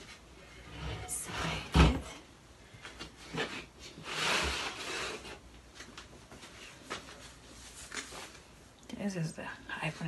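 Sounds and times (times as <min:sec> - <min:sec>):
board scraping on table: 0:03.3 - 0:05.4.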